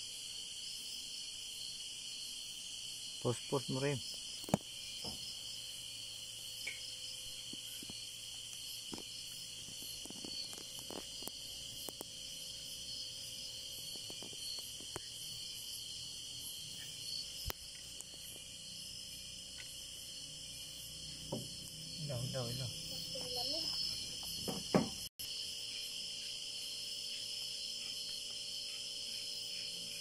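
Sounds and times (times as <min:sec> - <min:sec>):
night insects chirring: 0:00.0 - 0:30.0.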